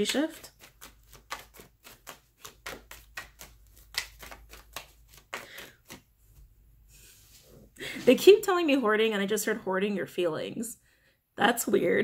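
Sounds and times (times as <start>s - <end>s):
cards being shuffled: 0.0s - 6.5s.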